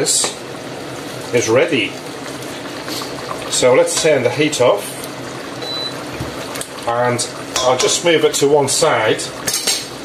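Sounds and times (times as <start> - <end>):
stew bubbling in a pot: 0.0 - 10.0
short high beep: 5.6 - 5.9.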